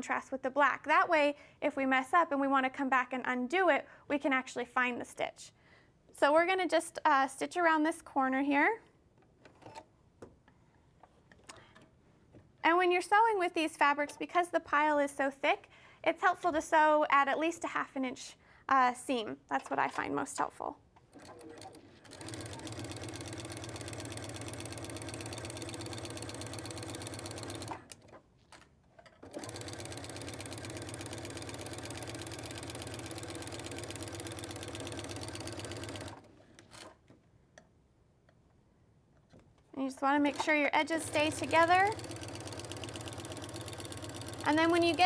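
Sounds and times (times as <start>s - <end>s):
sewing machine ticking: 21.1s - 28.2s, 29.2s - 37.0s, 40.2s - 45.0s.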